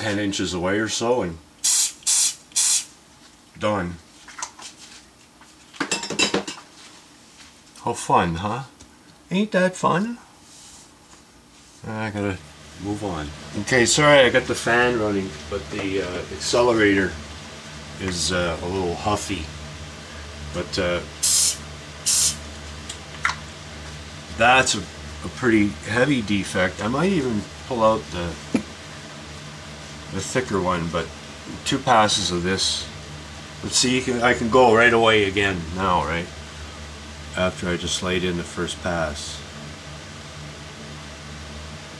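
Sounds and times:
room fan humming: 0.0s - 41.9s
aerosol spray hiss: 1.6s - 3.0s, 21.2s - 22.4s.

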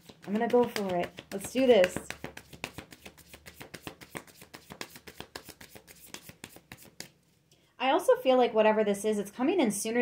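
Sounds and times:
cards being shuffled: 0.0s - 7.2s.

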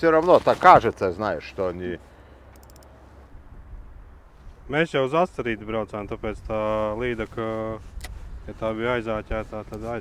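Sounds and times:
faint high ticks: 2.5s - 2.9s.

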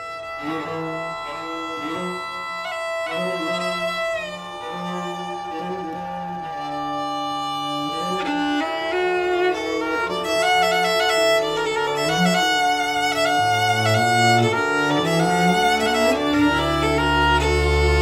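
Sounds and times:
bowed cello: 0.0s - 18.0s
bowed double bass: 0.0s - 18.0s
violin melody: 0.0s - 18.0s.

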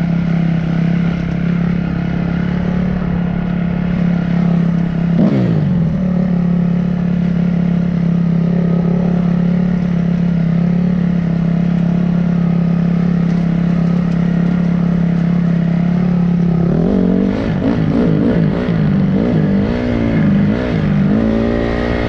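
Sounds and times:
dirt bike engine running: 0.0s - 22.0s.

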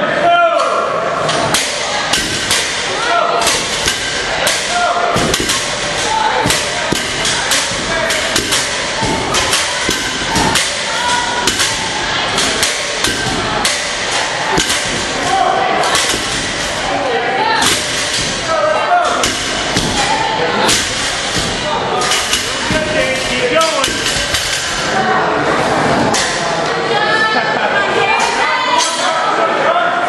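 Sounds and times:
people shouting: 0.0s - 27.4s
barbells thudding on floor: 1.3s - 24.8s.

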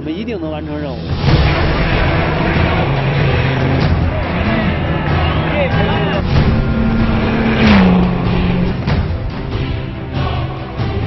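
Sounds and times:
background music: 0.0s - 11.0s
car passing rush: 1.0s - 10.1s
rally car engine: 1.0s - 11.0s.

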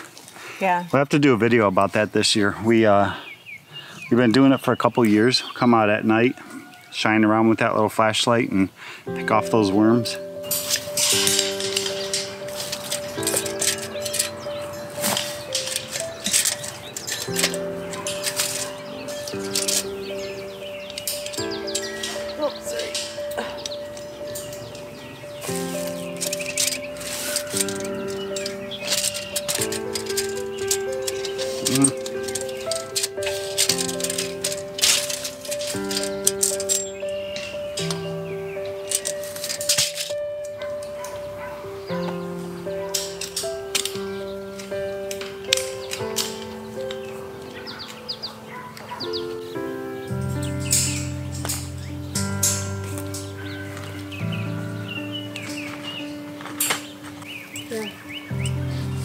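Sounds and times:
instrumental held chords: 9.1s - 59.0s.

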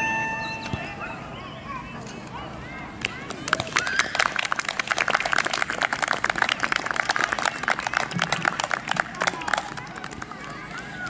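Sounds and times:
audience applauding: 3.4s - 11.0s.

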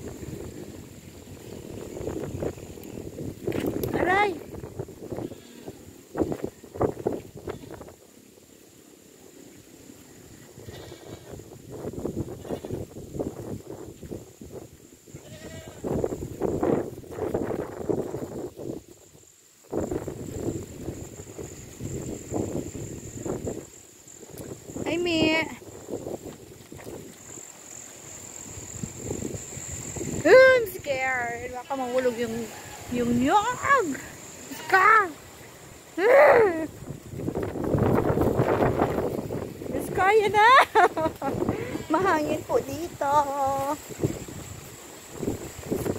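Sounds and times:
wind buffeting microphone: 0.0s - 8.0s, 10.1s - 45.9s.

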